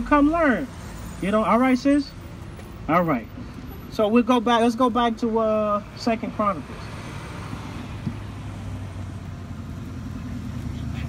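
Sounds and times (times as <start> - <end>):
motor vehicle rumble: 0.0 - 11.0.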